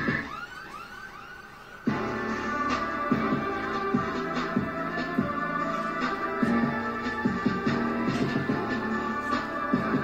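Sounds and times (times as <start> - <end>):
siren-like synth swoops: 0.0 - 6.4
electronic music beat: 0.0 - 10.0.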